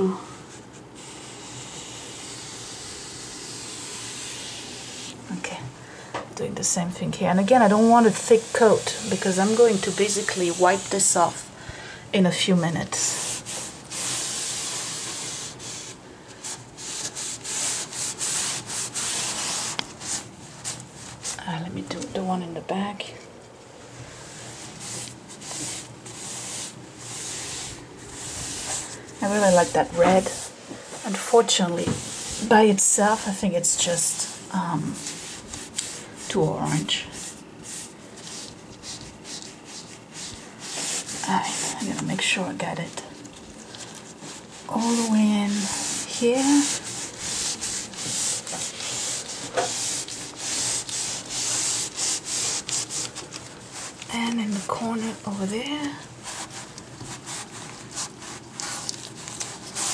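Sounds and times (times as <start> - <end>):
cloth rag wiping wood: 0.5 - 5.4, 7.4 - 11.4, 12.8 - 21.5, 24.0 - 59.9.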